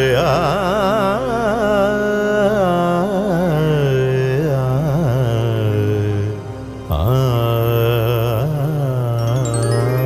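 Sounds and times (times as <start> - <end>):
devotional song: 0.0 - 10.0.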